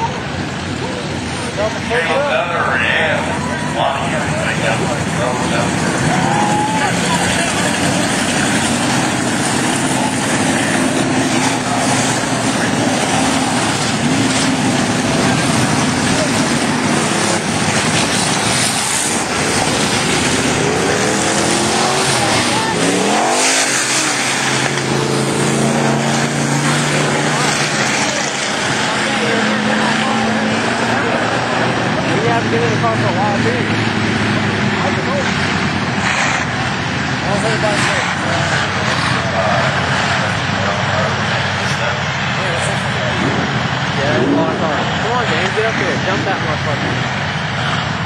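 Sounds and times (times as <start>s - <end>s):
stock car engines racing: 0.0s - 48.0s.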